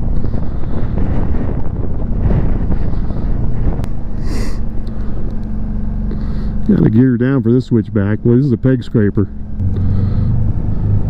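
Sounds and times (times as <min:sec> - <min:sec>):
motorcycle engine running: 0:00.0 - 0:11.0
wind buffeting microphone: 0:00.0 - 0:11.0.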